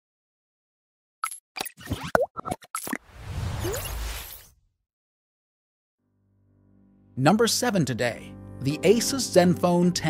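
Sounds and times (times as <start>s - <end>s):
whoosh: 3.0s - 4.7s.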